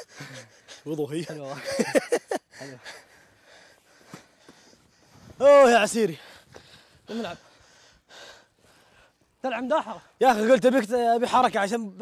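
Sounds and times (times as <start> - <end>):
suppressed laughter: 1.5 - 2.9.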